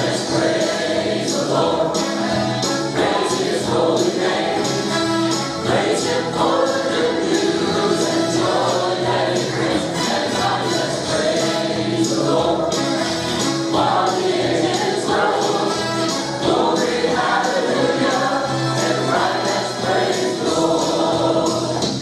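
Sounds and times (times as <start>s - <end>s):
congregation singing: 0.0s - 22.0s
instrumental accompaniment: 0.0s - 22.0s.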